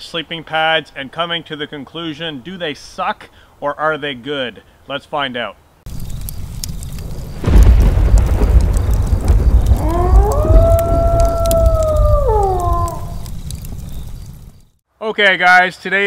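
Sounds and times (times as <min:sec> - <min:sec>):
rain: 0:05.9 - 0:14.8
deep rumble of thunder: 0:06.0 - 0:14.6
wolf howl: 0:09.7 - 0:13.3.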